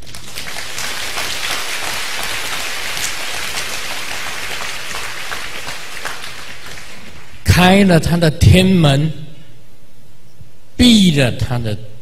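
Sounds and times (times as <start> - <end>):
audience applauding: 0.0 - 7.4.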